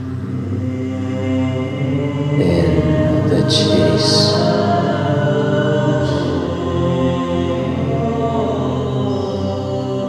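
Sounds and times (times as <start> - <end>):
choir holding sustained chords: 0.0 - 10.0.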